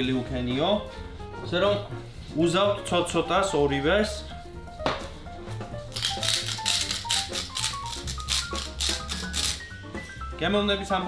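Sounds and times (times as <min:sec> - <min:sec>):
background music with bass: 0:00.0 - 0:11.0
pepper mill grinding: 0:05.9 - 0:09.8.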